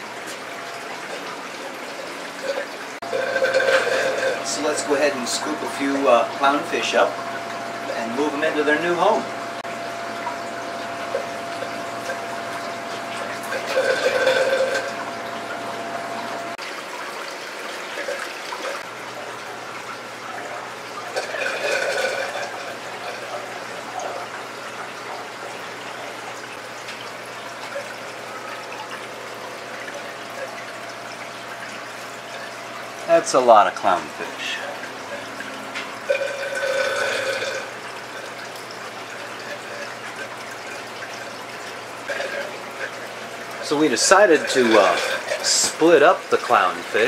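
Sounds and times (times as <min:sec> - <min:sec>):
running water in aquarium: 0:00.0 - 0:47.0
water sloshing and splashing: 0:00.0 - 0:47.0.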